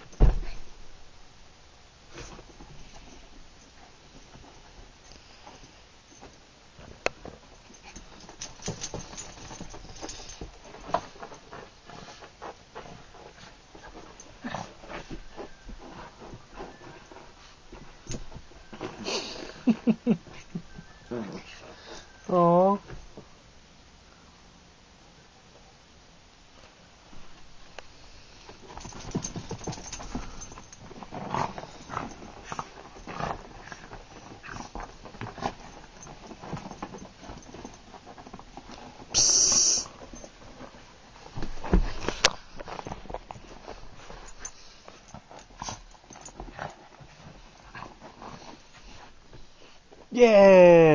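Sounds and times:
dog fur scuffling on carpet: 26.6s - 50.1s.

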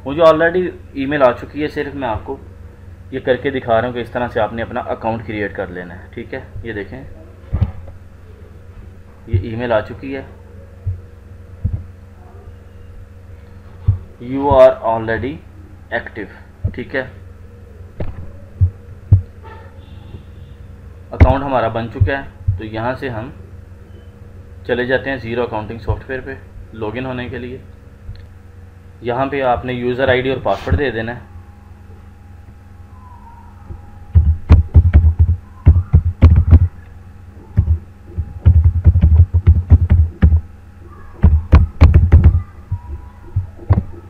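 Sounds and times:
low electrical hum: 0.0s - 44.0s
dull low thumps: 10.8s - 12.0s, 13.8s - 14.6s, 18.0s - 19.4s, 33.6s - 36.8s, 37.5s - 40.6s, 41.2s - 44.0s.

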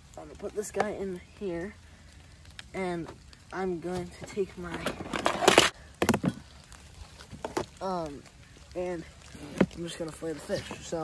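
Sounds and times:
rustling scrape: 4.3s - 5.8s.

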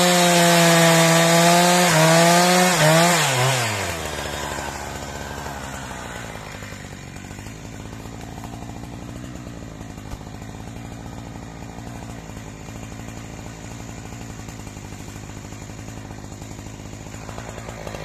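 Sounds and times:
chainsaw idling and revving: 0.0s - 18.0s.

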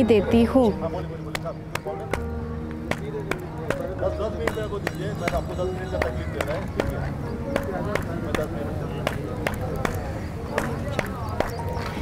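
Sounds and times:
background music with held notes: 0.0s - 12.0s
person clapping hands: 1.3s - 12.0s.

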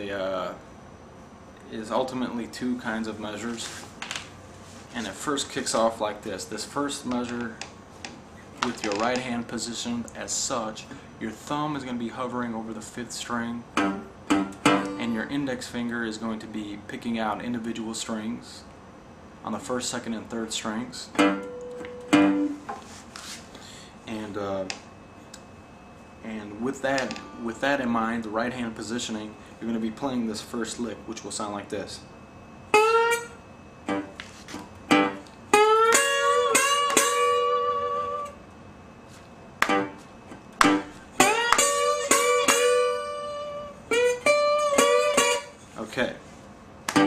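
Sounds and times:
guitar notes plucked: 13.7s - 15.3s, 21.1s - 22.7s, 26.9s - 28.0s, 32.7s - 34.2s, 34.9s - 38.4s, 39.6s - 40.0s, 40.6s - 45.6s.

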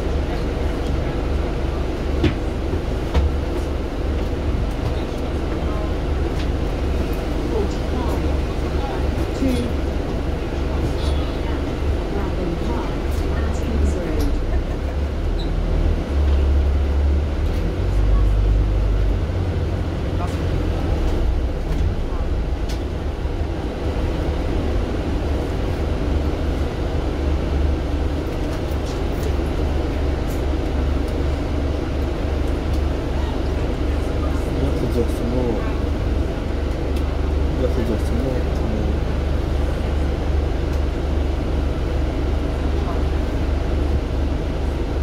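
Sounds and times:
bus engine and road drone: 0.0s - 45.0s.

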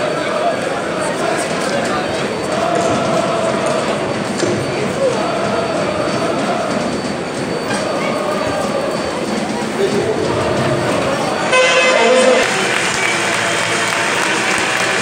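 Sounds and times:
crowd chanting: 0.0s - 15.0s
roar of many voices: 0.0s - 15.0s.

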